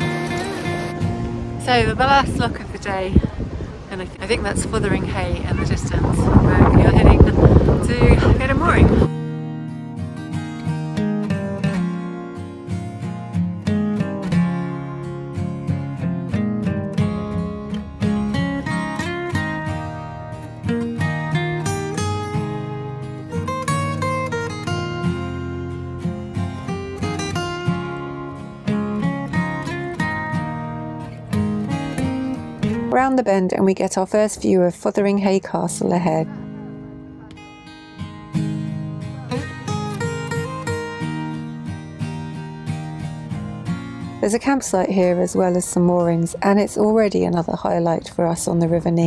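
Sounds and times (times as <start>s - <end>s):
plucked acoustic guitar tune: 0.0s - 49.0s.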